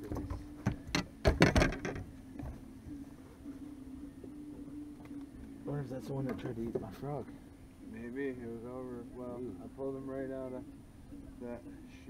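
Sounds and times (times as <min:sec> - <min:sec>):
knocks and thumps on boat: 0:00.0 - 0:02.7
low steady hum: 0:00.0 - 0:12.0.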